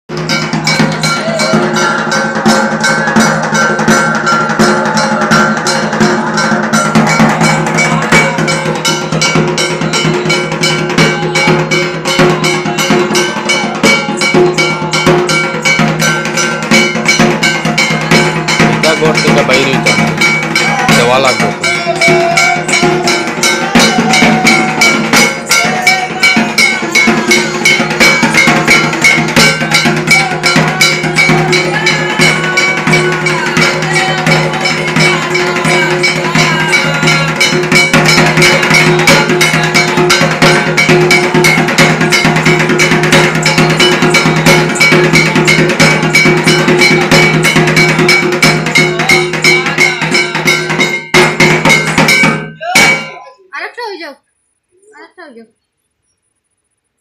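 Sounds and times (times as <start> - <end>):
barrel drum beating: 0.1 - 53.7
ringing metallic percussion: 0.1 - 55.4.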